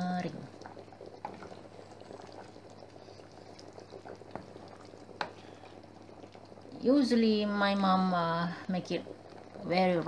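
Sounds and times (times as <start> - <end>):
wooden spoon stirring: 0.0 - 6.6
food bubbling in a pot: 0.0 - 10.0.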